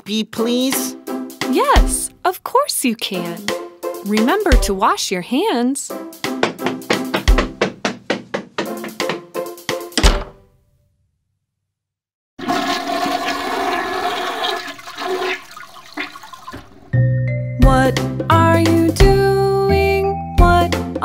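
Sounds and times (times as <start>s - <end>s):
toilet flushing: 12.4s - 17.0s.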